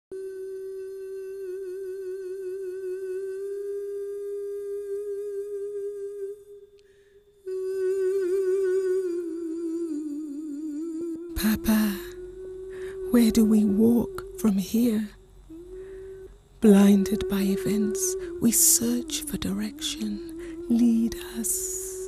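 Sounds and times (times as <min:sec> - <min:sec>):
woman humming: 0:00.1 - 0:06.6, 0:07.4 - 0:22.0.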